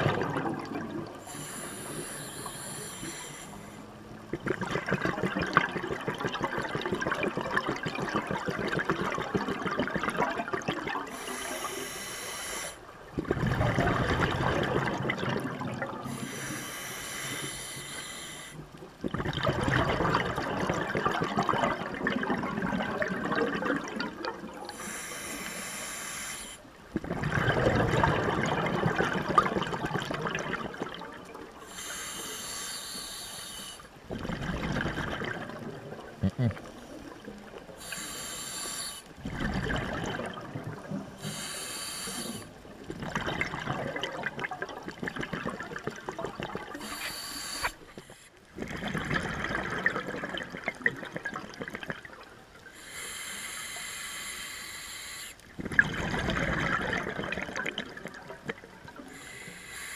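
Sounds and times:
exhaled air bubbling: 0.0 - 59.9
regulator inhale hiss: 1.2 - 4.0, 11.1 - 12.9, 16.0 - 18.7, 24.7 - 26.7, 31.6 - 34.0, 37.7 - 39.2, 41.1 - 42.7, 46.8 - 48.5, 52.7 - 55.5, 59.0 - 59.9.

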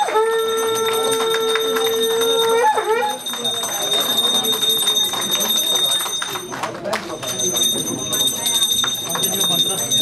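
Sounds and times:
conch shell blown: 0.0 - 3.4
people clapping: 0.0 - 10.0
hand bell ringing: 0.3 - 10.0.

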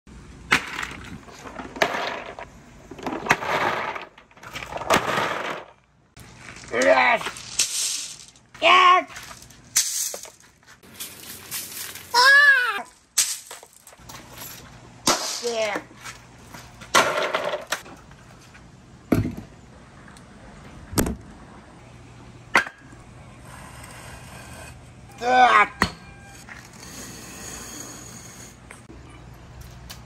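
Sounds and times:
crates set down on concrete: 0.5 - 5.8, 16.8 - 17.9
balls clattering and rattling: 0.5 - 12.1, 16.5 - 18.6
person exclaiming: 6.7 - 7.3, 8.6 - 9.2, 12.1 - 12.9, 25.2 - 25.8.

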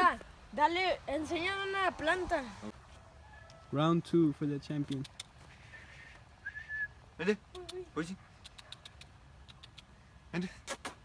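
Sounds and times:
short high whistle: 6.4 - 7.0.

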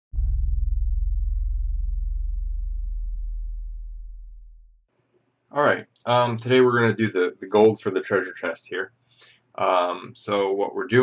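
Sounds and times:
deep booming tone: 0.1 - 4.8.

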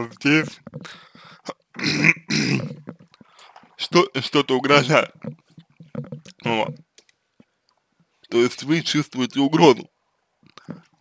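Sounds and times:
man clearing his throat: 1.8 - 2.8.

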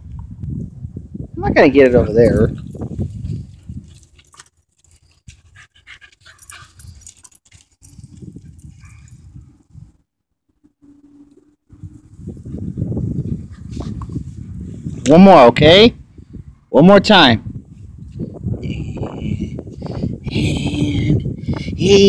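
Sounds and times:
dog panting: 4.8 - 7.6.

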